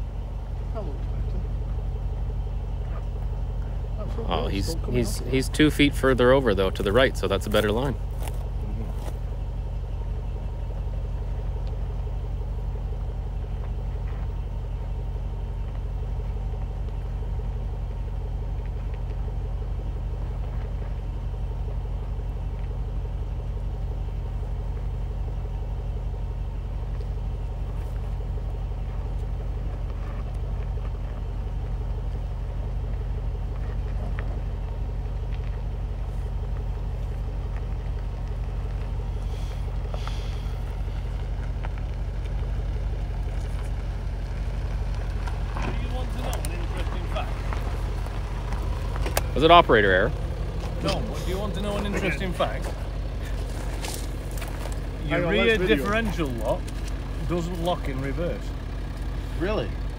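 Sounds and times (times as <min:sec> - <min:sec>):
vehicle engine idling: 0:00.0 - 0:59.9.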